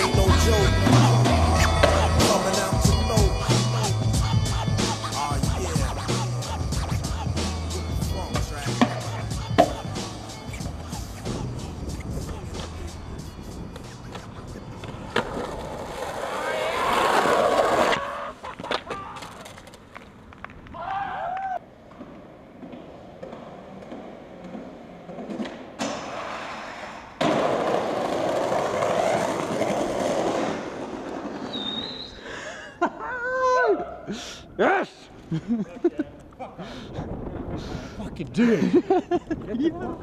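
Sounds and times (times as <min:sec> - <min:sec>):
skateboard wheels rolling on concrete: 0:00.0 - 0:32.5, 0:35.1 - 0:40.0
skateboard clacks and landings: 0:21.8 - 0:31.9.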